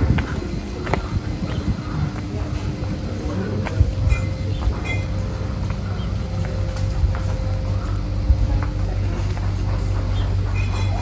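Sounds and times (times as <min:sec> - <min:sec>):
faint steady hum: 0:00.0 - 0:11.0
wind rumbling on microphone: 0:00.0 - 0:11.0.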